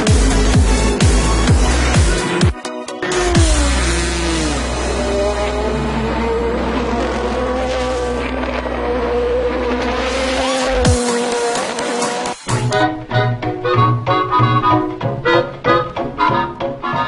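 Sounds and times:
background music: 0.0 - 17.0
race car engines passing: 3.0 - 12.4.

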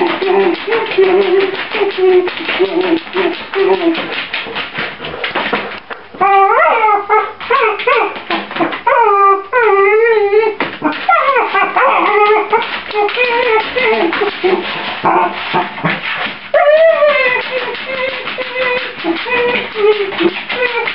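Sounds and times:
puppy whining and howling: 0.0 - 4.1, 6.2 - 8.2, 8.8 - 15.4, 16.5 - 20.9.

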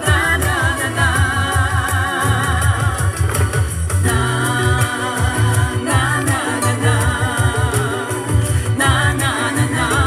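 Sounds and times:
backing track with bass beat: 0.0 - 10.0
woman singing into microphone: 0.0 - 10.0.

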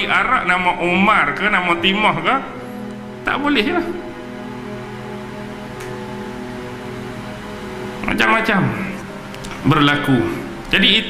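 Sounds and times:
sustained music chord: 0.0 - 11.0.

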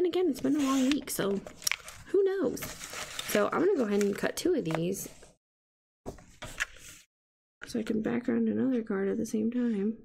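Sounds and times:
paper being handled: 0.5 - 5.3.

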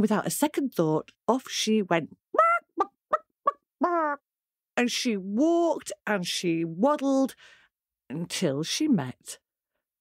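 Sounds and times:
woman imitating hen clucking: 2.4 - 4.2.

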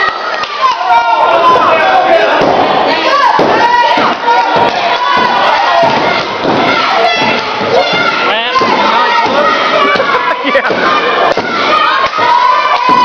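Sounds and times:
crowd shouting and cheering: 0.0 - 13.0
dull thuds: 2.3 - 13.0.

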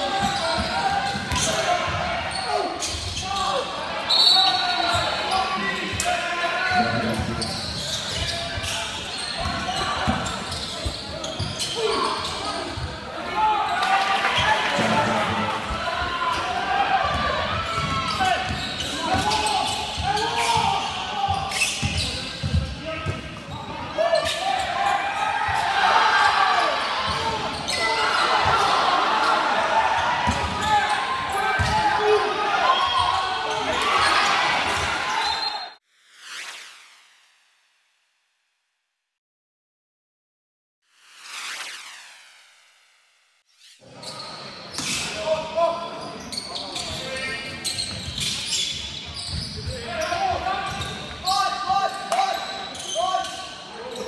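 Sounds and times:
basketball bouncing on wooden court: 21.3 - 23.2.

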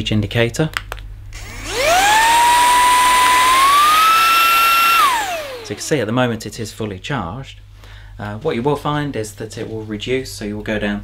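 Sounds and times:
handheld vacuum motor whine: 1.4 - 6.0.

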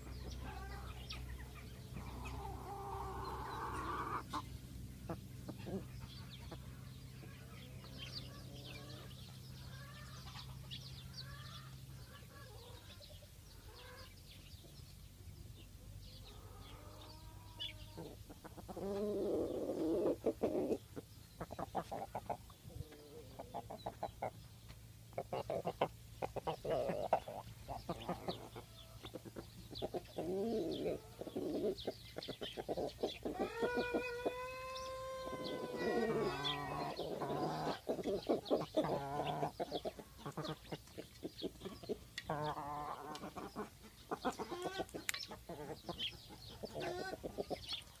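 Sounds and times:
chickens clucking: 0.0 - 48.0.

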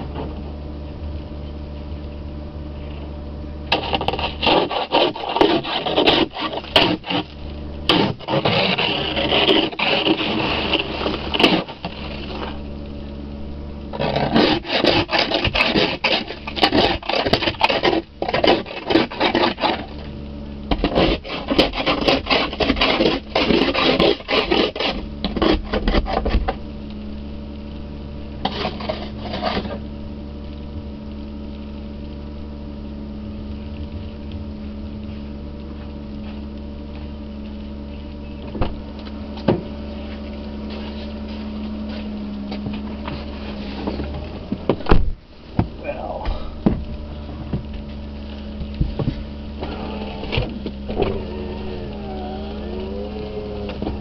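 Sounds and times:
ice scraper on windshield: 3.7 - 12.6, 13.9 - 26.6, 28.4 - 29.8, 47.9 - 54.0
car engine idling: 10.3 - 14.4, 26.5 - 54.0.

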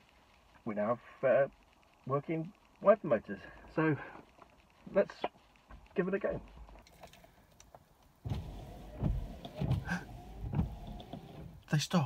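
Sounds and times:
wiper blades thumping: 8.2 - 11.6
wiper motor whine: 8.3 - 11.6.

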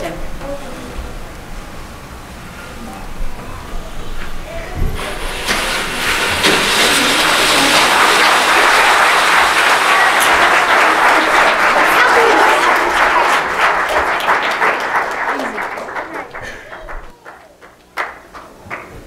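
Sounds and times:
voices: 2.7 - 17.6
audience applauding: 5.0 - 19.0.

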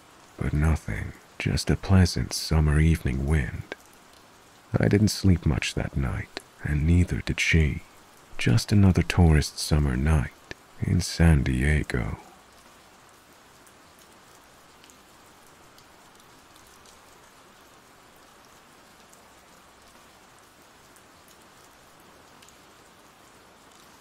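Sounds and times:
soft rain patter: 0.0 - 24.0.

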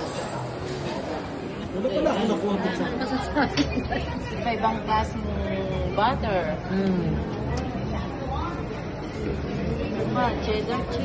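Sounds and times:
several voices chattering: 0.0 - 11.0.

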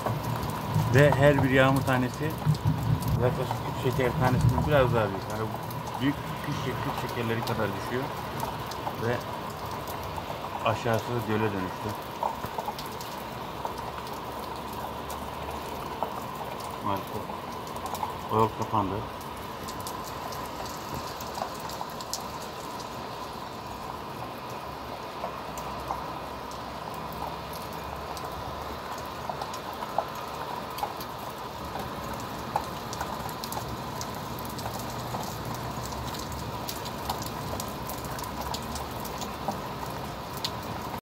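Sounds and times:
heavy rain hiss: 0.0 - 41.0
raindrops pattering on surfaces: 0.0 - 41.0.

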